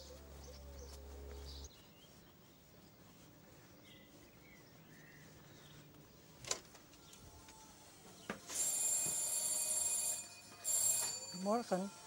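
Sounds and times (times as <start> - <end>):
electric door bell ringing: 8.5 - 11.9.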